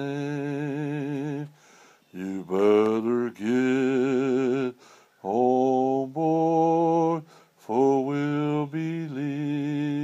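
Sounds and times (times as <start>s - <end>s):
man singing a hymn unaccompanied: 0.0s - 10.0s.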